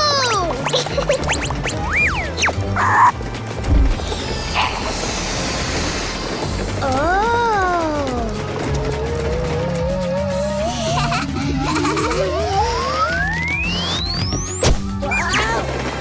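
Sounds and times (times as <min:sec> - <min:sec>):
cartoon background music: 0:00.0 - 0:16.0
thump: 0:03.6 - 0:04.0.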